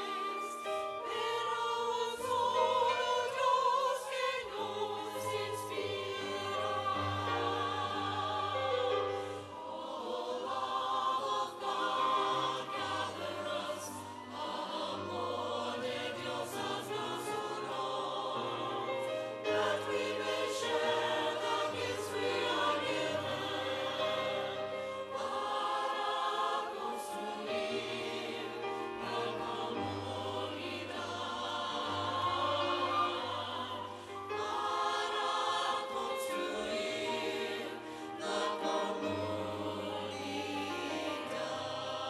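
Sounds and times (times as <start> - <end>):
choir singing: 0.0 - 42.0.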